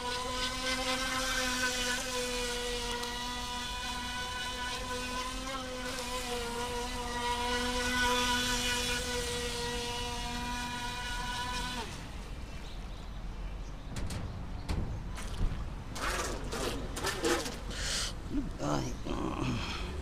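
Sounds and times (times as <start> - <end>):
electric motor whining: 0.0 - 12.5.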